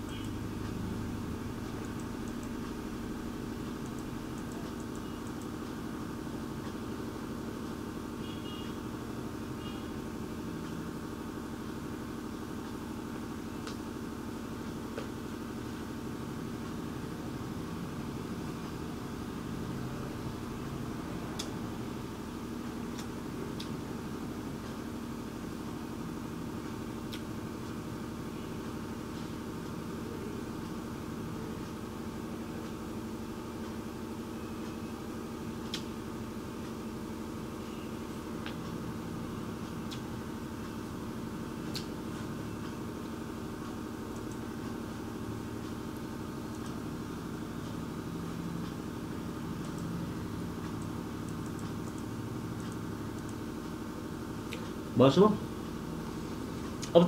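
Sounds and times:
low equipment hum: 0.0 - 57.0.

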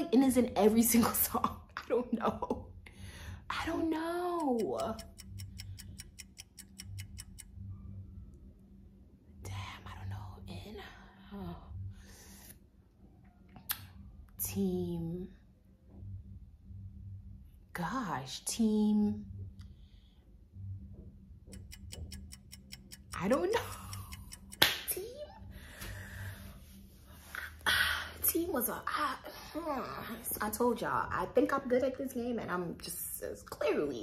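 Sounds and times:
faint low hum: 0.0 - 34.0
fast timer ticking: 3.6 - 7.8, 21.3 - 25.2.

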